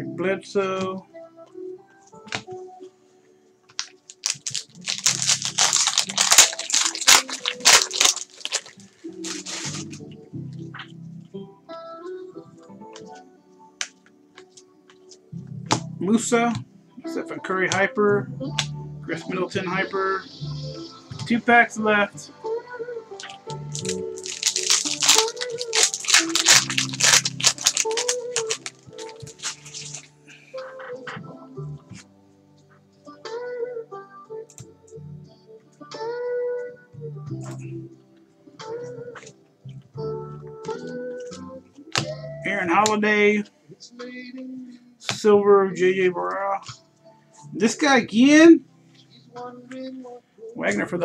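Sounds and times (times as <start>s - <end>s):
background music: 0.0s - 51.0s
foil wrapper crinkling and tearing: 3.8s - 10.0s, 23.2s - 30.1s.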